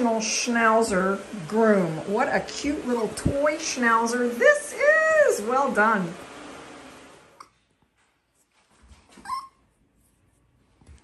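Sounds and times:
puppy whimpering: 9.2 - 9.7.

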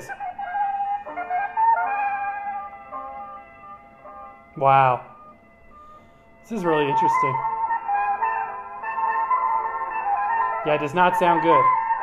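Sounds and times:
thin melody from phonograph horn: 0.1 - 12.0.

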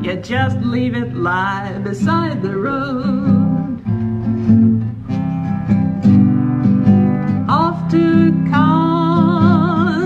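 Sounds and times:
person singing folk song: 0.0 - 4.2, 7.2 - 10.0
acoustic guitar strumming: 0.0 - 10.0.

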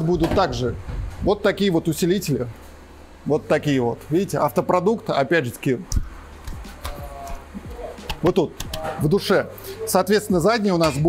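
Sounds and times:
quiet background music: 0.0 - 11.0
person speaking: 3.2 - 11.0.

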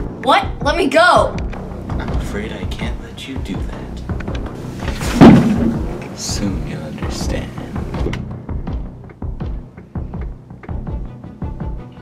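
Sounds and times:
suspense film score: 0.0 - 12.0
loud heavy thud: 4.8 - 6.0.

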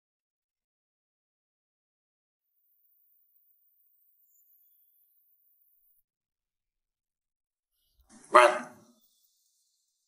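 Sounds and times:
man shouting: 8.2 - 8.8.

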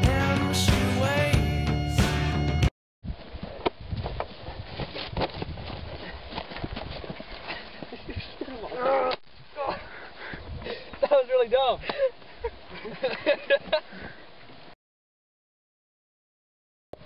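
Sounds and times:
person crying out: 8.5 - 9.9.

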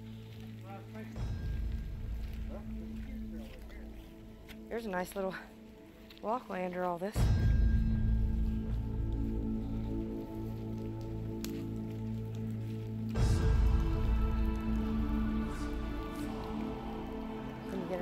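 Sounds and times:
droning chords music: 0.0 - 18.0
low rumble: 7.2 - 18.0.

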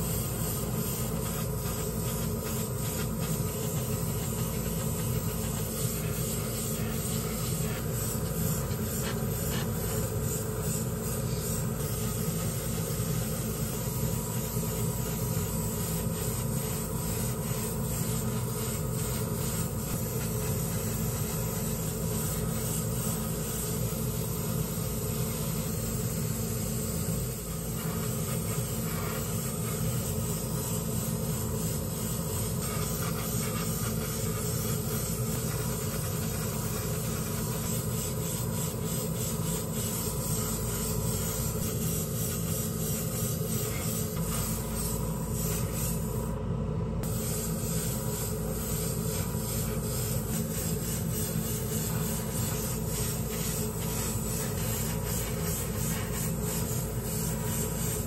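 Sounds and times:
airbrush hissing: 0.0 - 46.4, 47.0 - 58.0.

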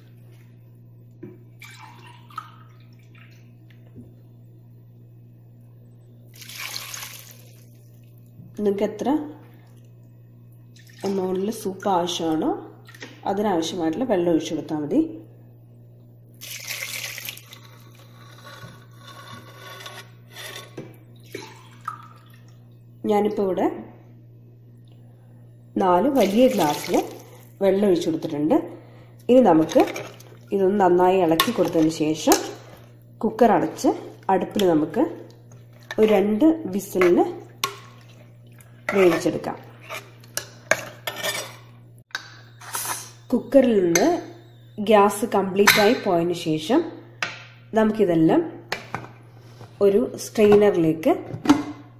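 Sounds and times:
steady low hum: 0.0 - 51.9
water running from tap: 6.3 - 7.7, 16.4 - 17.6, 26.2 - 27.5.

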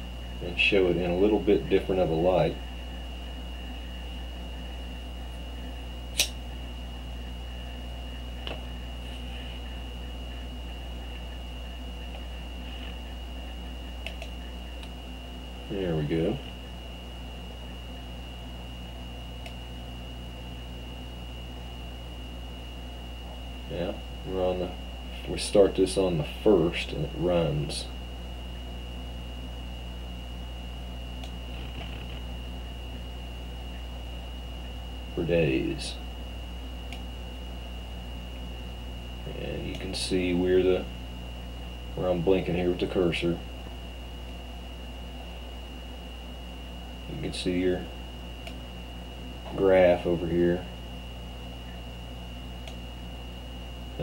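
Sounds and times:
low hum with high whine: 0.0 - 54.0
sharp click: 6.1 - 6.4, 14.0 - 15.0, 36.9 - 37.1
faint click: 19.4 - 19.6.

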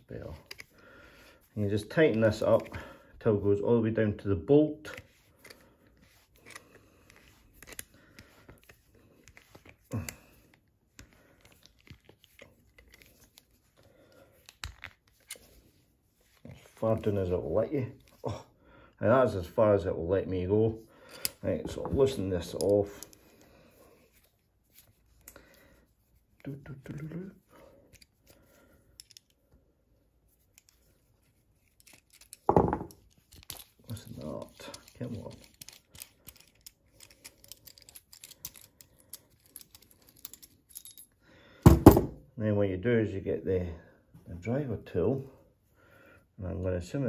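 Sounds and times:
small tool clicks and scrapes: 31.6 - 41.0.

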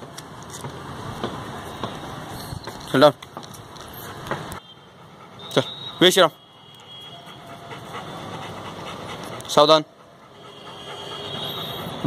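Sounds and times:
steady background noise: 0.0 - 12.0
man speaking a command: 5.5 - 6.4, 9.5 - 9.9.

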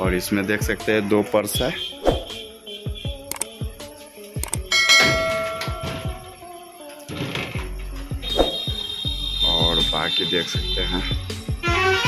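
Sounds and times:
background music with steady beat: 0.0 - 12.0
quick clicks: 3.3 - 3.6, 4.4 - 4.7
notification bell ding: 4.7 - 5.9.

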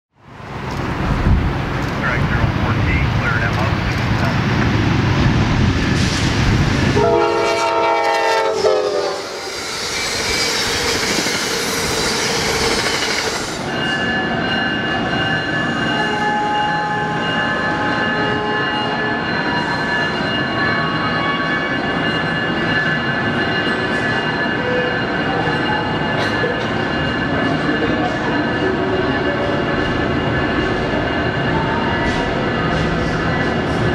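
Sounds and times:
rush of passing train cars: 0.2 - 33.9
train rumbling: 0.2 - 33.9
train horn: 6.9 - 10.0, 16.0 - 19.0
high whining tones: 8.5 - 26.1.

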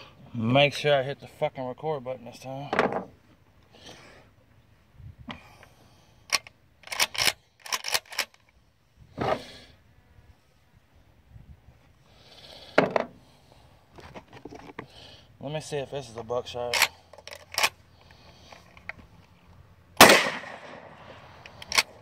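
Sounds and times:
shotgun handling clicks: 6.3 - 8.6, 16.7 - 19.1, 20.0 - 22.0
shotgun shot: 20.0 - 21.0.

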